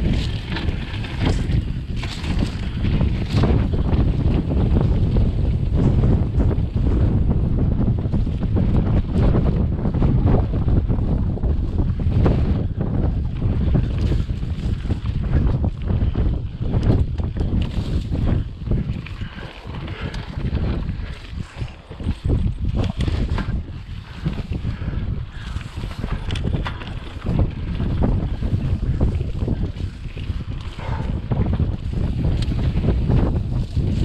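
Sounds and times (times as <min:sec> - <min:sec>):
bike knocks and rattles: 0:00.0 - 0:34.0
bike rolling over dirt: 0:00.0 - 0:34.0
wind buffeting microphone: 0:00.0 - 0:34.0.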